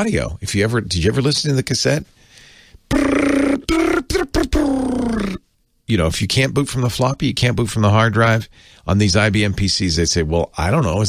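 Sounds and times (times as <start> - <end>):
man making pitched vocal noise: 2.9 - 5.5.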